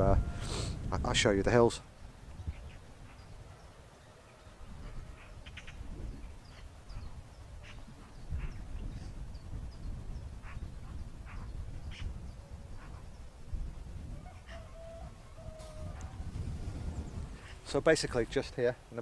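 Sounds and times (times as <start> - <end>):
wind rumbling on microphone: 0.0 - 18.7
faint birdsong chirps: 1.6 - 17.8
short bird calls: 2.4 - 9.1.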